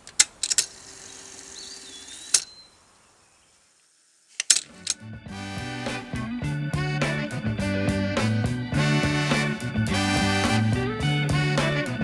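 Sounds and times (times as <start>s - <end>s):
sharp clicks: 0.0s - 0.8s, 2.0s - 2.6s, 4.3s - 5.0s
outdoor ambience: 0.0s - 6.1s
bird call: 0.9s - 3.6s.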